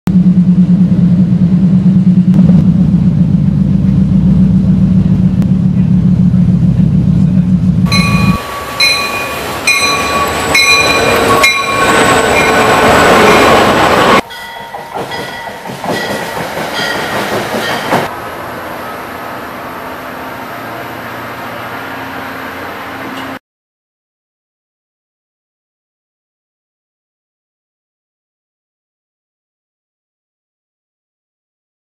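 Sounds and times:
passenger train passing: 0:00.1 - 0:23.4.

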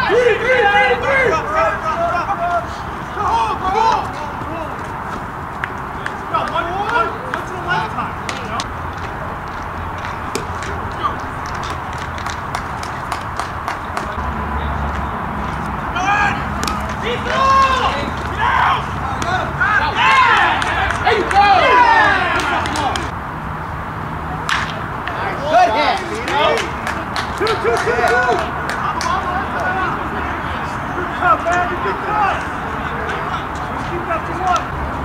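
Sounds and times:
voices shouting and calling out: 0:00.0 - 0:23.2, 0:24.2 - 0:35.0
outdoor background noise: 0:00.0 - 0:35.0.

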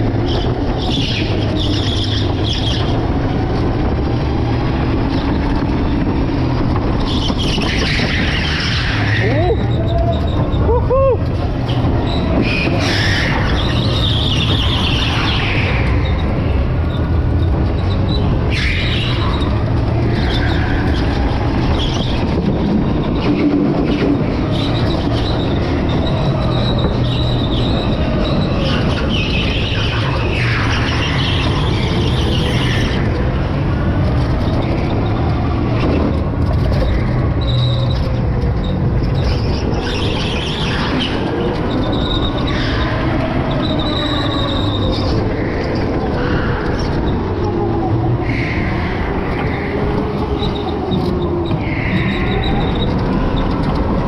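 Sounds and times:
tyres squealing: 0:36.5 - 0:54.0.

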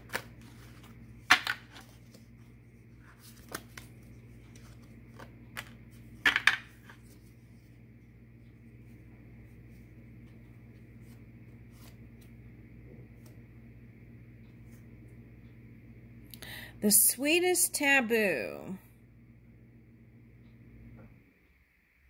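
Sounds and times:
cards snapping and tapping: 0:00.0 - 0:02.2, 0:03.2 - 0:07.0
faint steady hum: 0:00.0 - 0:22.0.

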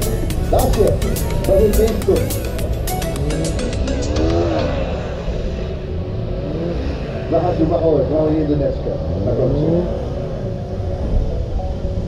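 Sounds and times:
music with a beat: 0:00.0 - 0:04.7
car engine revving: 0:00.0 - 0:12.0.

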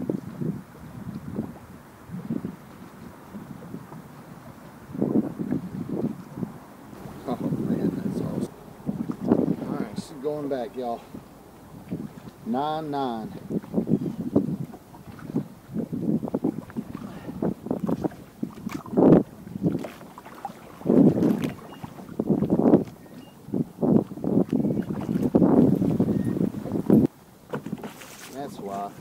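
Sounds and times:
water splashing: 0:00.0 - 0:29.0
wind buffeting microphone: 0:00.0 - 0:29.0
bumps and knocks on boat: 0:07.0 - 0:10.4, 0:13.3 - 0:29.0.

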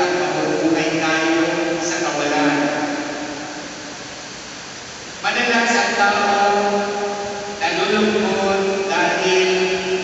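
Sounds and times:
echo of amplified speech: 0:00.0 - 0:10.0
room noise hiss: 0:00.0 - 0:10.0.

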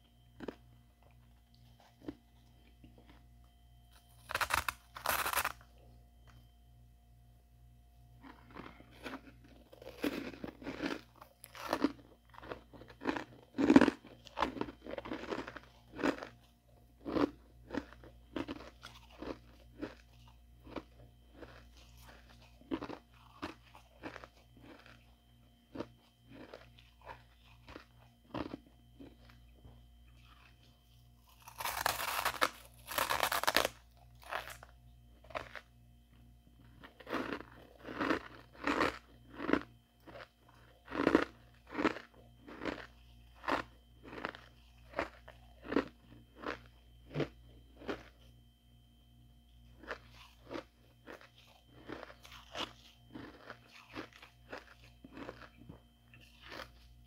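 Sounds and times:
frost being chewed: 0:00.3 - 0:05.6, 0:08.2 - 0:48.5, 0:49.5 - 0:57.0.

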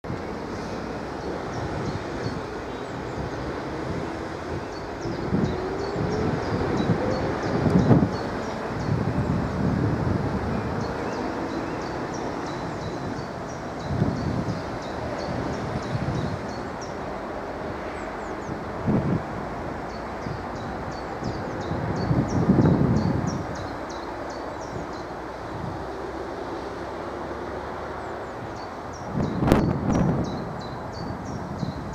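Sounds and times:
wind buffeting microphone: 0:00.0 - 0:31.9
birds chirping: 0:00.1 - 0:31.9.

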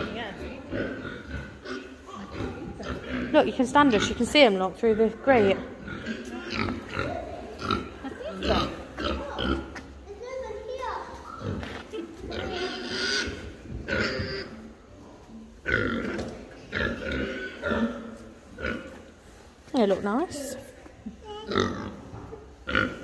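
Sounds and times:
pigs grunting: 0:00.0 - 0:04.3, 0:04.9 - 0:09.7, 0:11.4 - 0:14.7, 0:15.6 - 0:19.0, 0:21.4 - 0:23.0
voices: 0:19.7 - 0:21.8.

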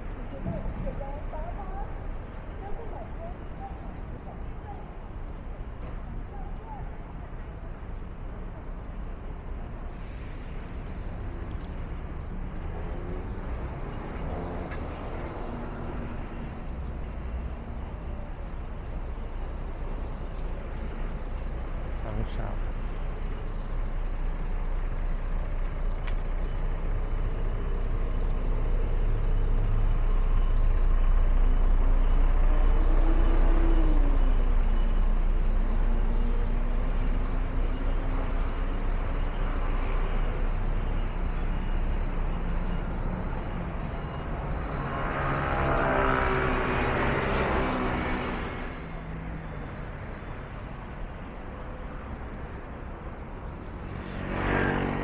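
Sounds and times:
city traffic rumble: 0:00.0 - 0:55.0
loud vehicle passing close: 0:44.3 - 0:48.8, 0:53.9 - 0:55.0.

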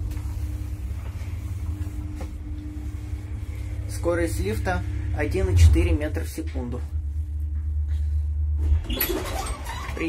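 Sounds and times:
lift car rumble and hum: 0:00.0 - 0:10.0.

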